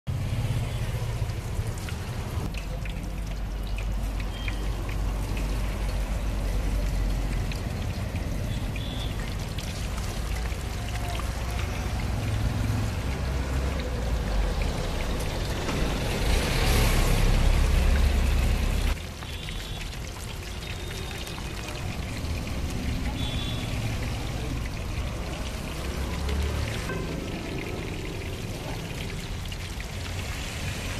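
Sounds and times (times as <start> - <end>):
low street rumble: 0.1 - 30.9.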